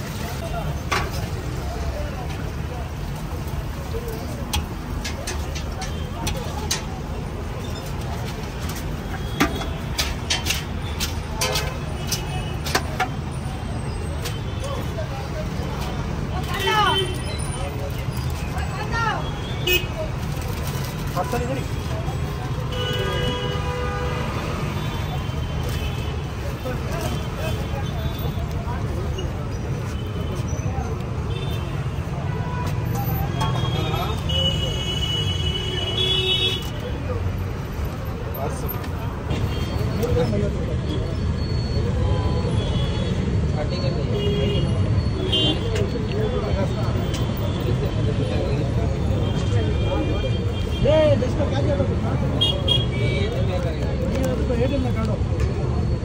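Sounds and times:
people talking: 0.0 - 8.4, 43.5 - 56.0
street traffic rumble: 0.0 - 56.0.

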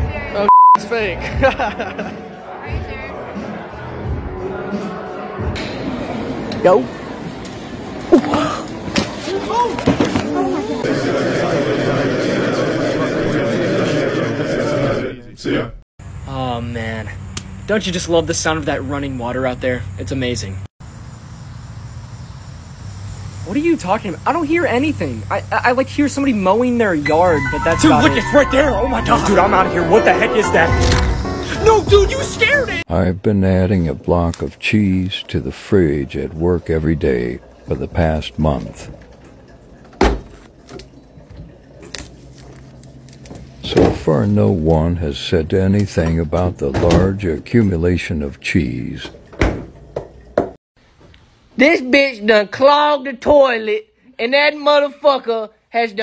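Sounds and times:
refrigerator door thumping shut: 40.0 - 40.4, 49.4 - 49.8.

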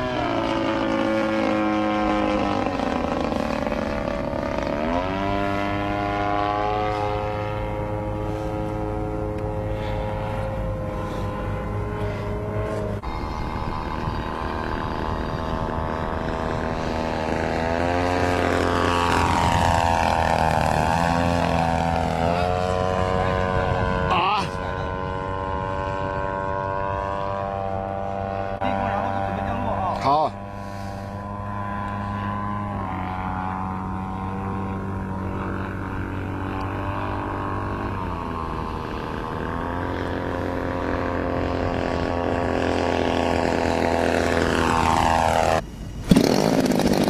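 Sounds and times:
model plane engine and propeller: 0.0 - 47.0.

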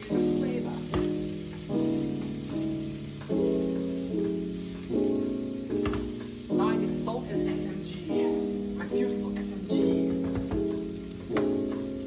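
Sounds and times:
piano chords music: 0.0 - 12.0
vegetables sizzling in frying pan: 0.0 - 12.0.

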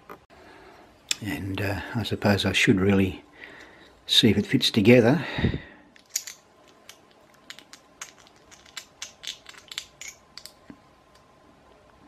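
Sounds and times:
plastic parts clicking and scraping: 6.0 - 11.2.

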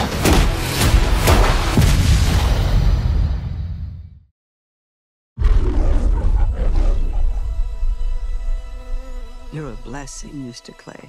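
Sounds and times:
lion roaring: 5.4 - 8.1.

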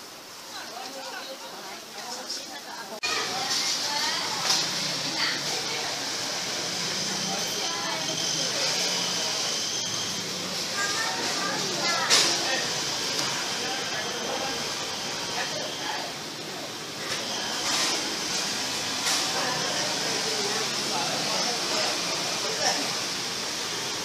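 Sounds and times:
crowd chatter: 0.0 - 24.0.

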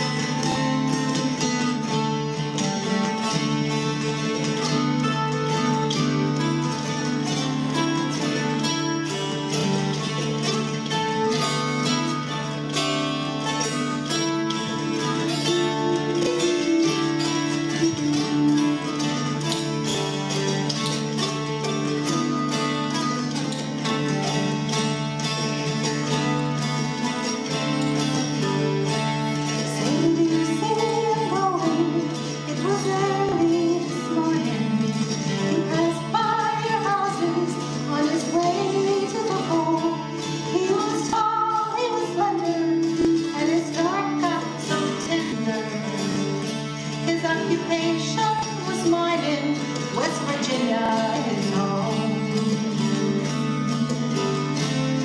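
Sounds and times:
mountain dulcimers playing folk tune: 0.0 - 55.0
woman singing: 13.6 - 19.8, 29.1 - 55.0.

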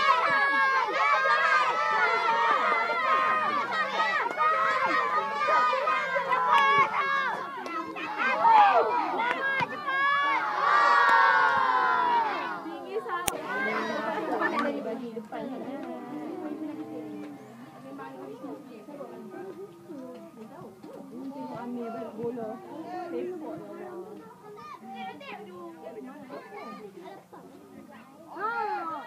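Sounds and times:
children shouting and cheering: 0.0 - 18.8, 19.8 - 29.0.

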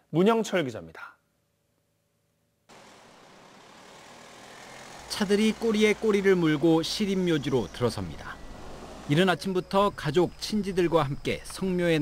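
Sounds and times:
cars driving slowly past: 2.7 - 9.8.

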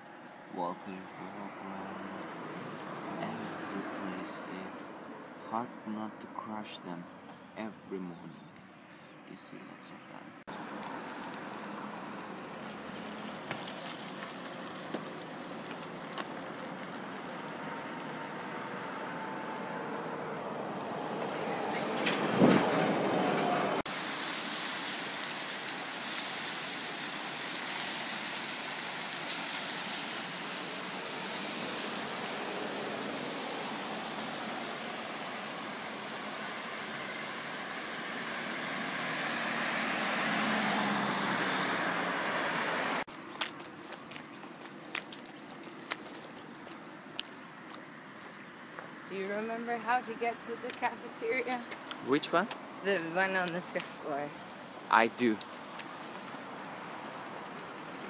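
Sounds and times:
road traffic rushing: 0.0 - 58.0
car engine and tyres driving slowly: 10.4 - 49.4, 53.5 - 58.0.

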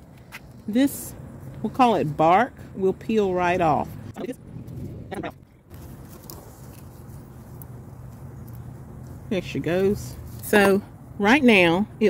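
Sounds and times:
steady low hum: 0.0 - 12.0
leaves rustling: 4.6 - 10.7.

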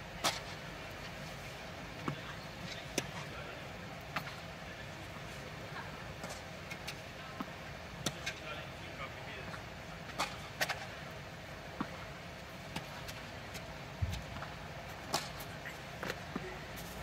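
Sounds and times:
tennis ball struck by rackets: 14.1 - 16.2.

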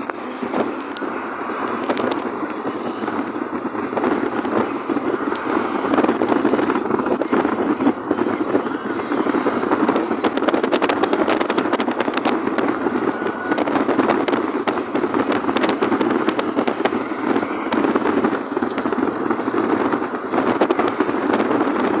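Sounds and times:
car road and engine noise: 0.0 - 22.0
rapid crackling clicks: 0.0 - 22.0.

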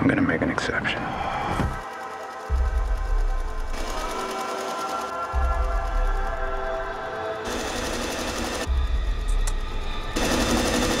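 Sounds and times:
low bass drone: 2.5 - 4.1, 8.6 - 11.0.

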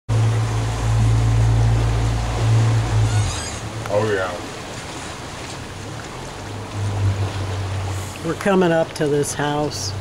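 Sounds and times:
boat engine rumble: 0.1 - 10.0
water noise: 0.1 - 10.0.

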